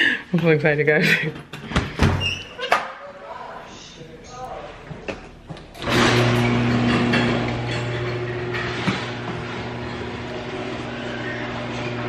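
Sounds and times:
garage door opener motor humming: 5.8s - 12.0s.

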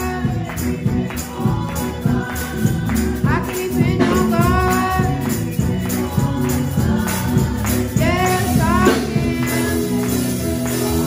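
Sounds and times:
gospel band playing: 0.0s - 11.0s
hand clapping: 0.0s - 11.0s
woman singing: 0.0s - 11.0s.

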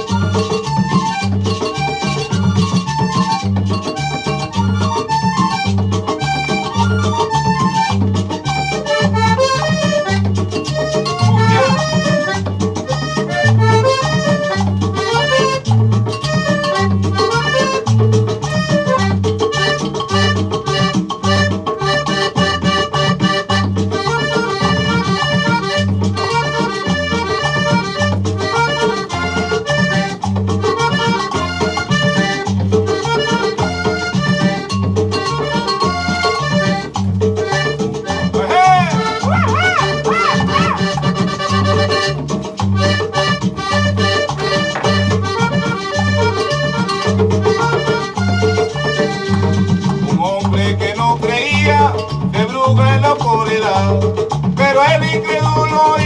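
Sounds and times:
cumbia music from a record: 0.0s - 56.0s.

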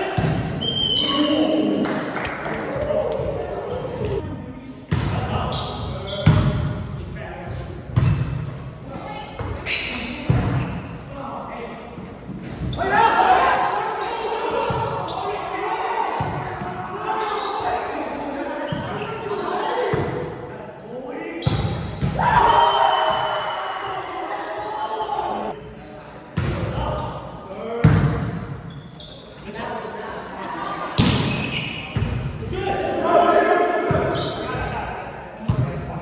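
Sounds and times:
players shouting: 12.7s - 18.2s.

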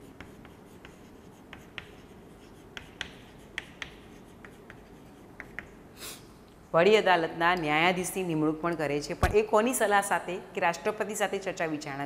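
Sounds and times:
chalk tapping and scratching: 0.0s - 5.8s.

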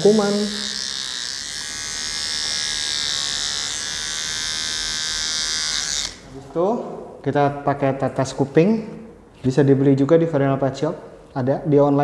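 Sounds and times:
pet nail grinder whining: 0.0s - 6.2s.

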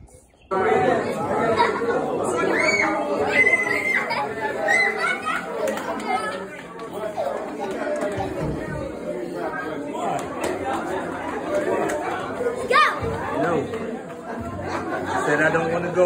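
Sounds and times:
indistinct chatter of voices: 0.0s - 16.0s.

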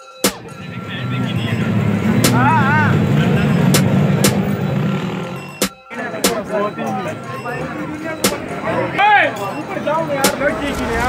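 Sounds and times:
car engine revving hard: 0.3s - 11.0s
crowd voices: 0.3s - 11.0s
warbling tone: 0.4s - 5.6s.

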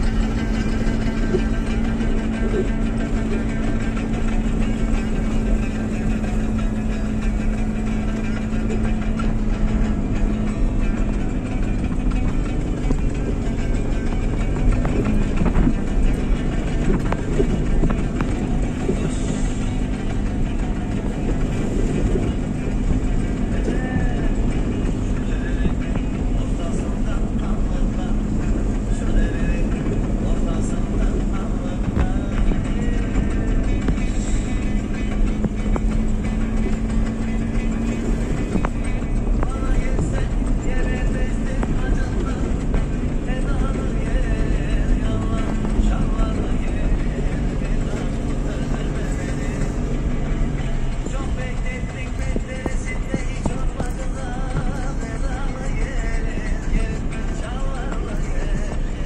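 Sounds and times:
music with singing voice: 0.0s - 59.0s
vehicle engines droning: 0.0s - 59.0s.

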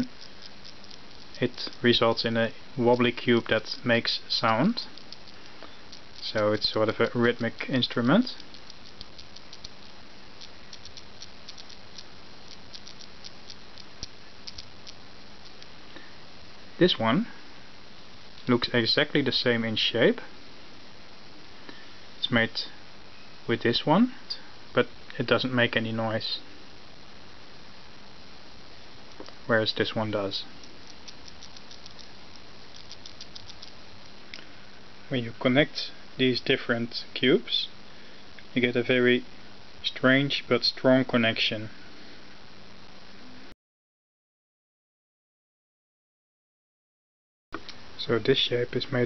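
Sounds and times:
magnet balls clicking: 2.9s - 3.8s, 4.4s - 15.7s, 30.6s - 33.8s.

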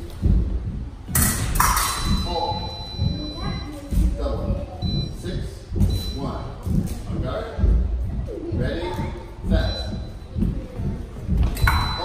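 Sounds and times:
fencing blades clashing: 1.1s - 2.2s.

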